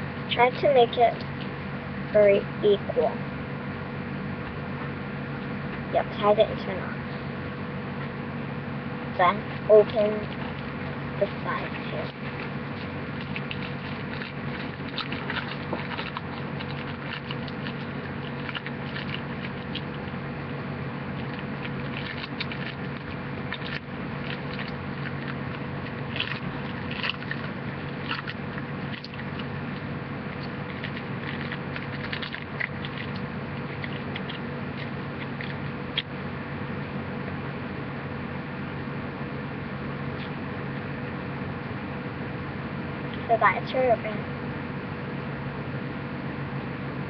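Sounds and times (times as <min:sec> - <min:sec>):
steady low hum: 0:00.0 - 0:47.0
wrapper crinkling: 0:09.8 - 0:20.2, 0:21.0 - 0:36.1.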